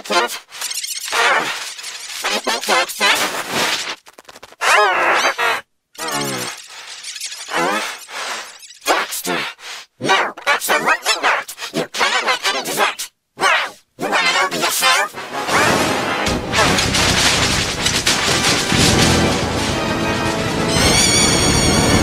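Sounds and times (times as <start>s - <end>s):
warbling garbled cartoon voices: 0.0s - 3.5s, 4.6s - 15.9s.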